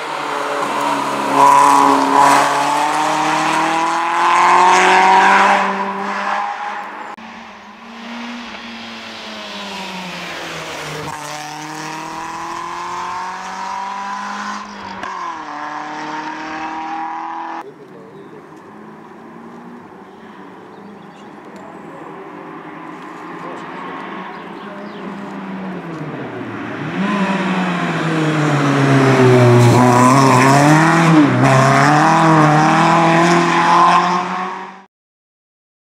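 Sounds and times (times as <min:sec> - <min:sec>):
rally car engine accelerating hard: 0:00.0 - 0:06.8, 0:07.9 - 0:17.6, 0:24.8 - 0:34.9.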